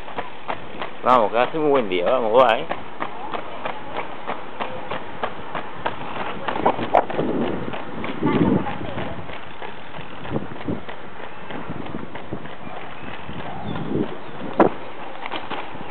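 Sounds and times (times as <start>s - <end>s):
running shoes slapping on asphalt: 0.0s - 15.9s
wind and road noise: 0.0s - 15.9s.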